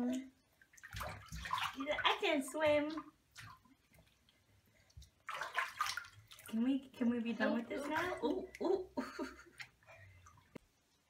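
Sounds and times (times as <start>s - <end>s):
bath water splashing: 0.0s - 10.8s.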